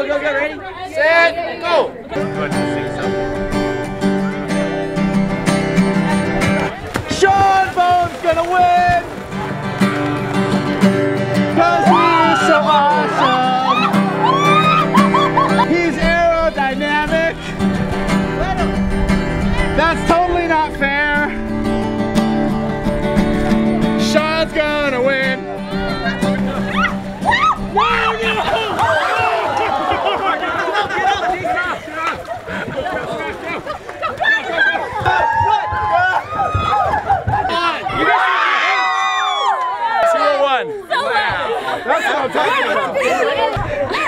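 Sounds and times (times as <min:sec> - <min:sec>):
crowd shouting cheering and laughing: 0:00.0 - 0:20.6, 0:22.7 - 0:44.0
people shouting: 0:06.9 - 0:10.4, 0:11.4 - 0:17.4, 0:25.5 - 0:44.0.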